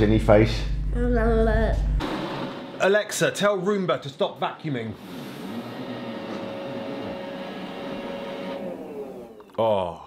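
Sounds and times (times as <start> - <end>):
high whine: 0.0 - 3.5
robot vacuum whirring: 5.0 - 9.6.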